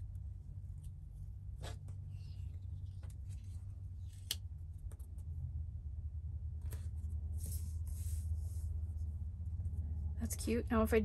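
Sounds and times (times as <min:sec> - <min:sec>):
steady low hum: 0:00.0 - 0:11.0
paper pages rustling and sliding: 0:06.7 - 0:08.8.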